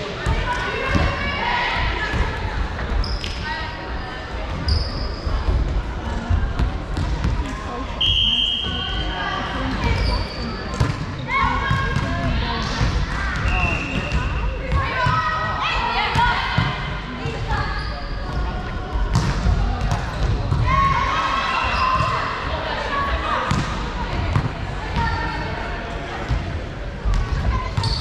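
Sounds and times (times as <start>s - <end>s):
sneakers squeaking on court: 27.7s - 28.0s.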